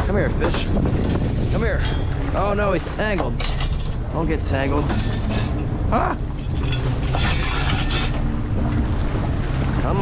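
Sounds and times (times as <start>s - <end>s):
boat engine running: 0.0s - 10.0s
rush of water: 0.0s - 10.0s
water washing against hull: 0.0s - 10.0s
wind buffeting microphone: 0.0s - 10.0s.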